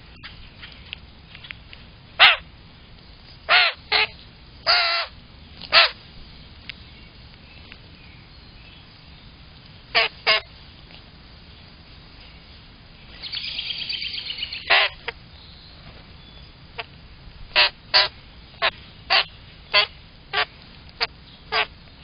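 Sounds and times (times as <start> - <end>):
birds squawking harshly: 2.2 - 2.4, 3.5 - 6.0, 9.9 - 10.5, 14.2 - 15.2, 17.6 - 21.7.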